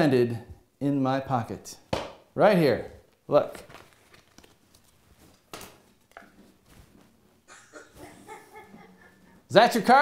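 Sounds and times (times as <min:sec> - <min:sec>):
card drawn from pocket: 0:03.6 - 0:06.2.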